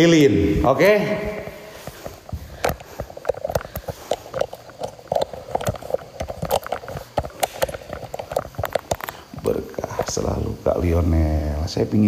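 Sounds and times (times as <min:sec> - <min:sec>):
small clicks and knocks from handling: 0:01.8 - 0:10.3.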